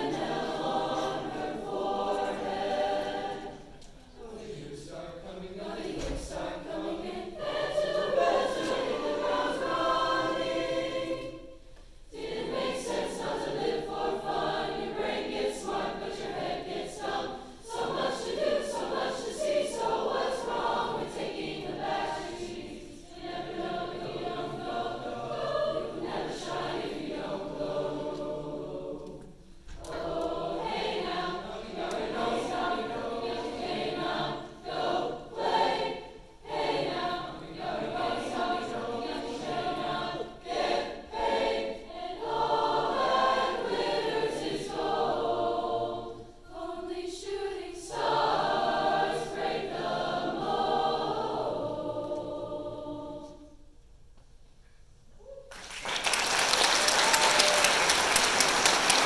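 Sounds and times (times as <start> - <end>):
large choir singing: 0.0 - 53.9, 56.0 - 59.0.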